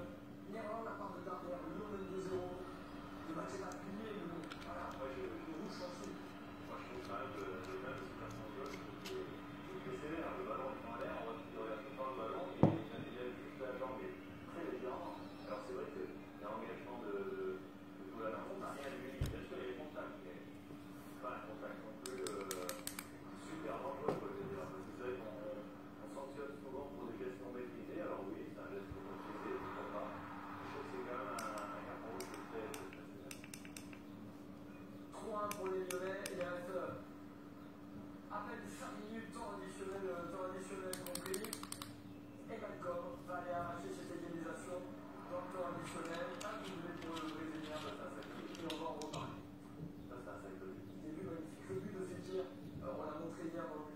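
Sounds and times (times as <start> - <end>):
man talking: 0.0 - 20.5, 21.1 - 33.5, 42.5 - 49.5, 50.1 - 53.9
steady low hum: 0.0 - 53.9.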